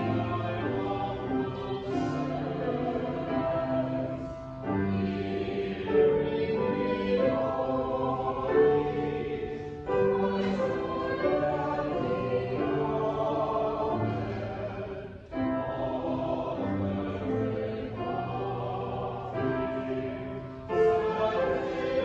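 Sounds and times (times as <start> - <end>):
choir singing sustained notes: 0.0 - 22.0.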